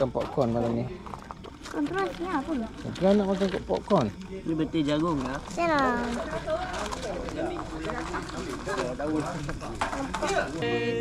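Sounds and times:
group of people talking: 0:00.0 - 0:11.0.

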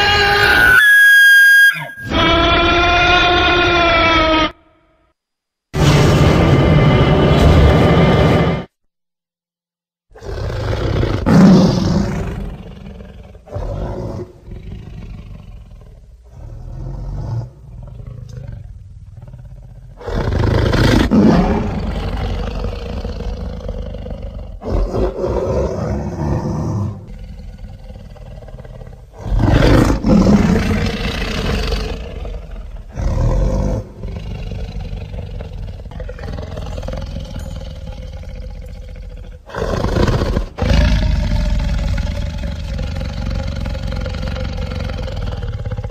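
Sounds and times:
dinosaur roars: 0:05.8 - 0:08.7, 0:10.2 - 0:45.9.

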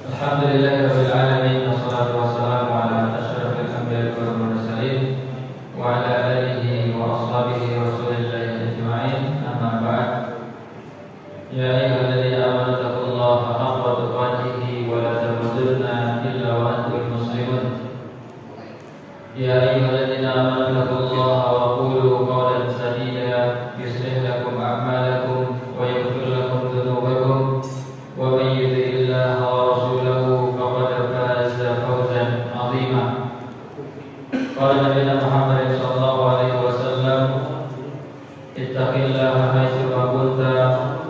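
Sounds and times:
man chanting melodic held notes: 0:11.2 - 0:18.0.

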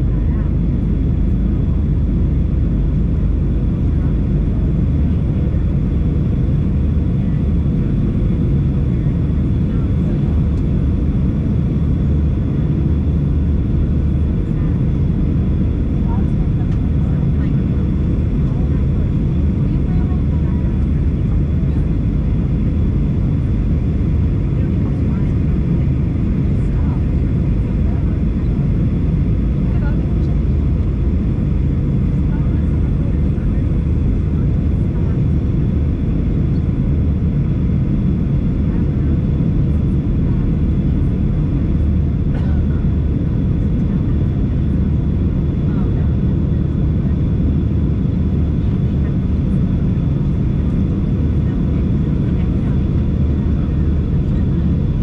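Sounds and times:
jet engine rumble: 0:00.0 - 0:55.0.

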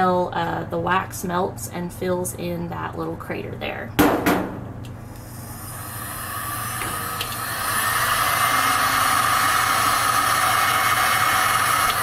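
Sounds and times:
heat gun fan blowing: 0:04.6 - 0:12.0.

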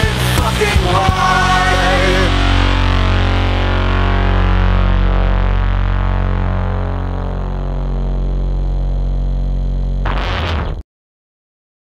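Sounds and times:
electric guitar and bass drone: 0:00.0 - 0:10.8.

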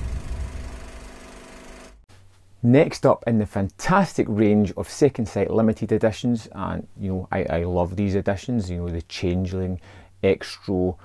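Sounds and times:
steady humming drone: 0:00.0 - 0:01.7
low mechanical rumble: 0:00.0 - 0:02.0.

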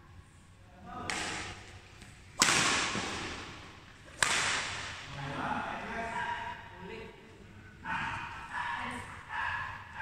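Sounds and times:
racket striking shuttlecock: 0:01.1 - 0:05.0.

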